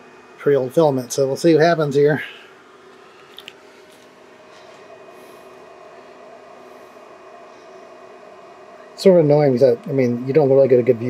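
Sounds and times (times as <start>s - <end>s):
printer mechanical hum: 0.0s - 11.0s.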